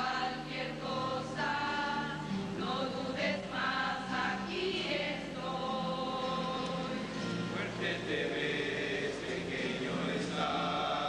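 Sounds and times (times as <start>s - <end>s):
children's choir singing a hymn: 0.0s - 11.0s.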